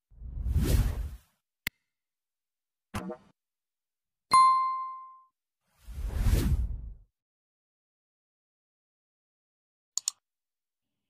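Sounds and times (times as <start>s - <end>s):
whoosh with deep rumble: 0.2s - 1.2s, 5.9s - 7.0s
bell-like ding: 4.3s - 5.3s.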